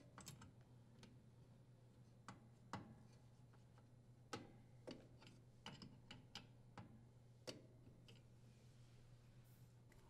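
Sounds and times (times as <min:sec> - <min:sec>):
metal nut clicking and tapping: 0:04.3 - 0:08.2.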